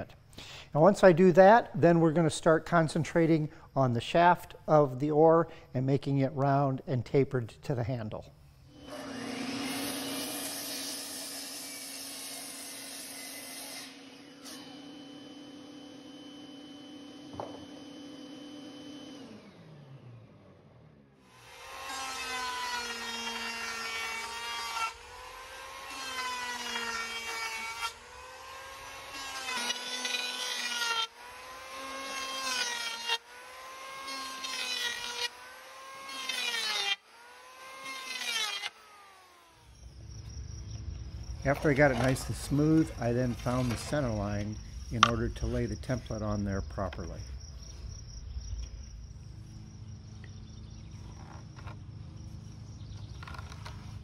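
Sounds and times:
electric hand planer passes: 8.7 - 45.5
miter saw cutting wood: 8.7 - 47.2.

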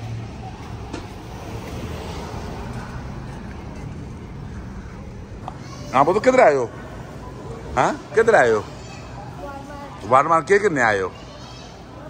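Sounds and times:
faint voices: 0.0 - 12.0
low rumble of traffic: 0.0 - 12.0.

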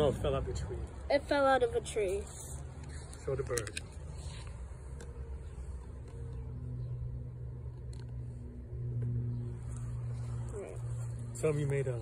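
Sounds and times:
low motor hum: 4.5 - 12.0.

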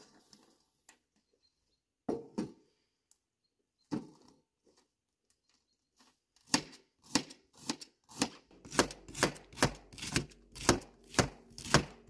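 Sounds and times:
knife slicing cabbage onto metal tray: 6.5 - 12.0.

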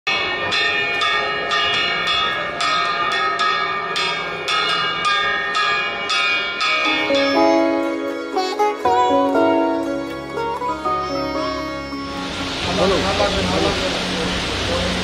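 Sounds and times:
sitar-like music: 5.6 - 15.0.

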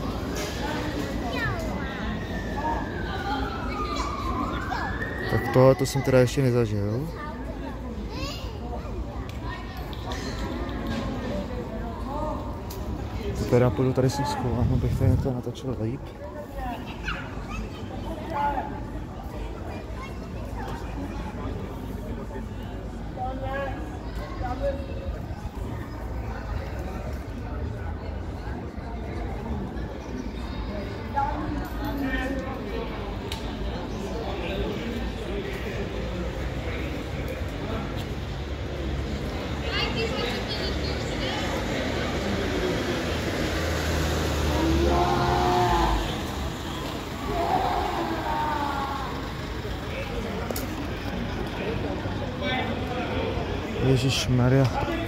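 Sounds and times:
street noise rumble: 0.0 - 55.0
voices: 0.0 - 55.0
indistinct voices talking: 38.7 - 55.0
vehicle engine running low: 41.6 - 53.8.

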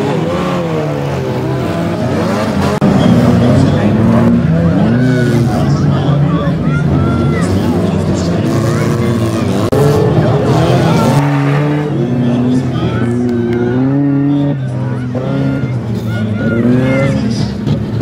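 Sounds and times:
car engines revving hard: 0.0 - 18.0.

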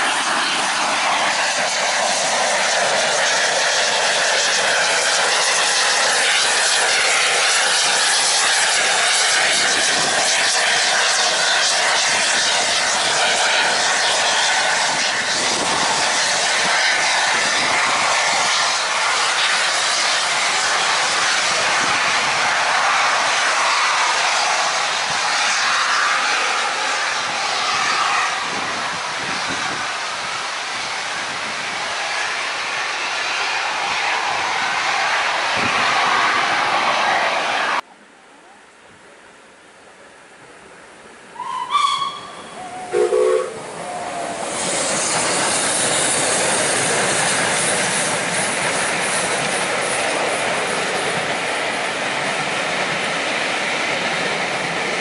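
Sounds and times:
rush of wind: 0.0 - 37.8, 41.2 - 55.0
steam locomotive passing: 0.0 - 37.9, 41.3 - 55.0.

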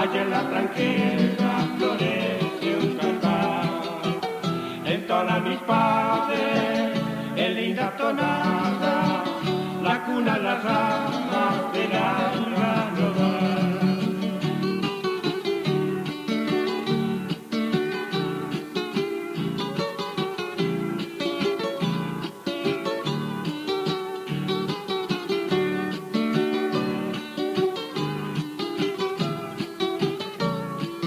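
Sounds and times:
acoustic guitars playing waltz: 0.0 - 31.0.

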